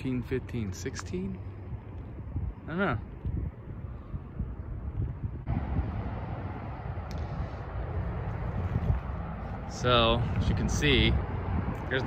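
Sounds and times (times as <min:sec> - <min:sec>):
highway traffic noise: 0:00.0 - 0:12.0
wind buffeting microphone: 0:00.0 - 0:12.0.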